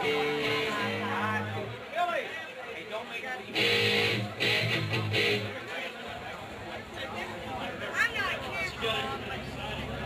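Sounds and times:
electric guitar chords: 0.0s - 1.8s, 3.5s - 5.6s
crowd chatter: 0.0s - 10.0s.

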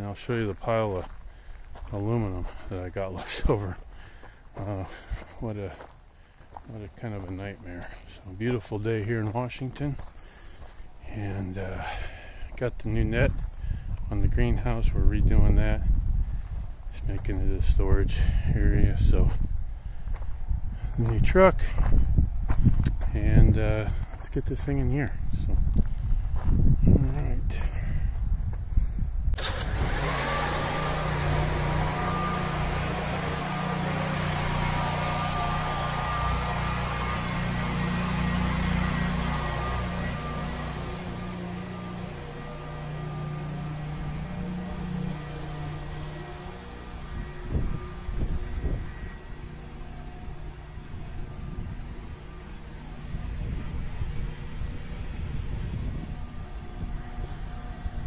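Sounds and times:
electric motor hum with whine: 29.4s - 58.0s.

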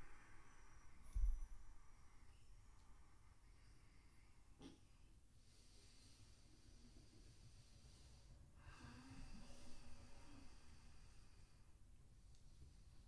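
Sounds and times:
person breathing faintly: 0.0s - 13.0s.

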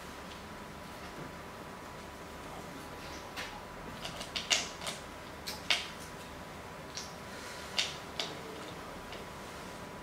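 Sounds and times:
stones clicking in a wooden bowl: 4.0s - 6.0s, 7.8s - 9.3s.

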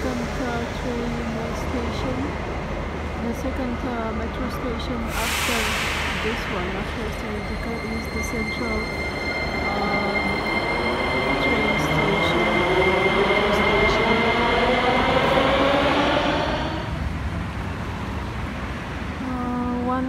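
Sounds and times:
train running rumble: 0.0s - 20.0s.

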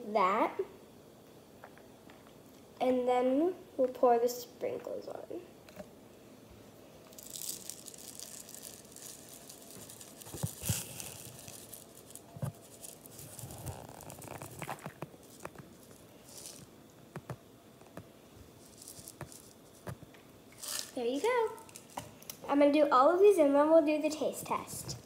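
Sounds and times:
sprinkles rattling out of plastic jar: 7.0s - 16.7s, 18.6s - 19.8s, 20.6s - 22.2s.

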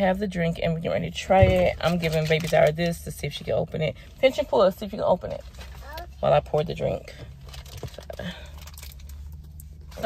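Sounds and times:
low hum inside car cabin: 0.0s - 10.0s.

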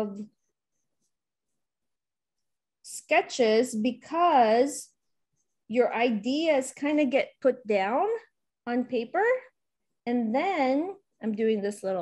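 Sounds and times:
woman's voice: 0.0s - 0.4s, 2.9s - 5.0s, 5.7s - 12.0s.

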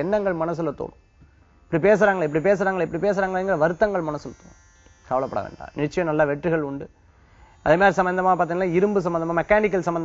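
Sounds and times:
man talking: 0.0s - 1.0s, 1.7s - 4.5s, 5.1s - 6.9s, 7.7s - 10.0s.

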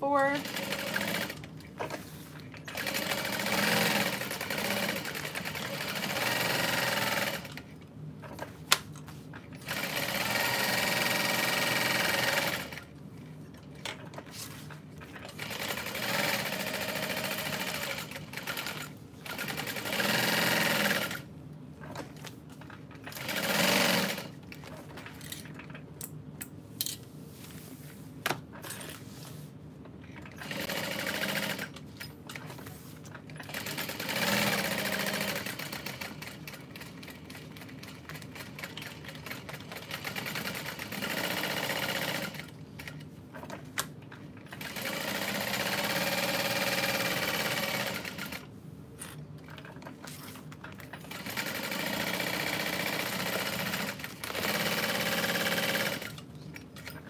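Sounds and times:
sewing machine stitching: 0.3s - 7.7s, 9.6s - 12.9s, 15.0s - 22.1s, 23.0s - 24.9s, 30.2s - 31.8s, 33.4s - 43.6s, 44.2s - 48.5s, 49.4s - 57.0s.

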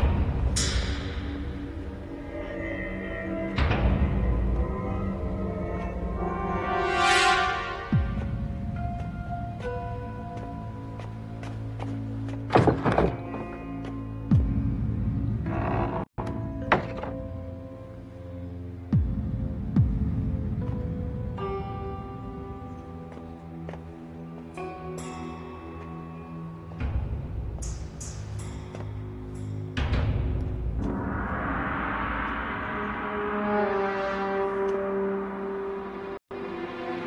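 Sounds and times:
tense held-note music: 0.0s - 12.5s, 13.2s - 37.0s
low drone: 29.1s - 37.0s.

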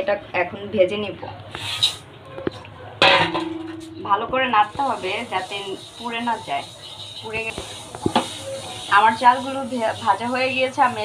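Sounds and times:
rice pouring into metal pan: 4.6s - 11.0s.

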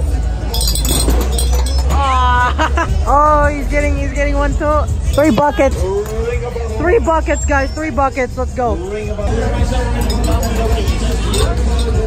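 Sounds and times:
plastic rings clinking on glass bottles: 0.4s - 2.2s, 5.0s - 6.8s, 9.5s - 12.0s.

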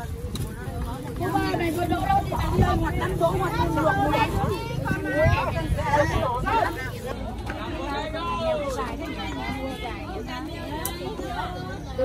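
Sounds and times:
people talking at once: 0.0s - 12.0s.

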